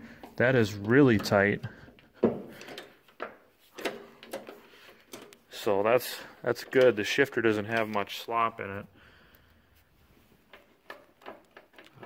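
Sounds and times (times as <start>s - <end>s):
handling clicks and knocks: 0.0s - 8.8s, 10.3s - 12.0s.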